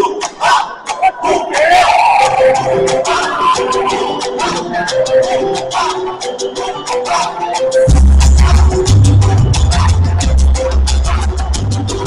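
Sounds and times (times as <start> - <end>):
mambo music: 0.0 - 12.0
spectators shouting and cheering: 0.0 - 12.0.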